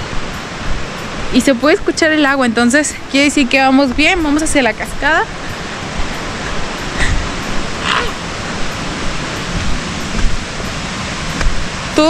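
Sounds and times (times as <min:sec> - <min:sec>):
distant waterfall rushing: 0:00.0 - 0:12.0
low thumps: 0:03.2 - 0:12.0.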